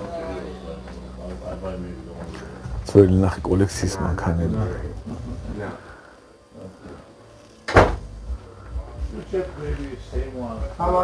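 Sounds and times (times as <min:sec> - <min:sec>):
faint voices: 0:00.0 - 0:07.5
low room noise: 0:00.0 - 0:11.0.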